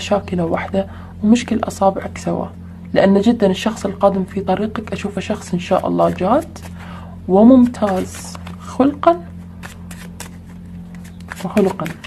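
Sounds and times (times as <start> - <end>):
steady low hum: 0.0 - 12.0
cards clicking and rustling: 7.6 - 8.7, 9.4 - 12.0.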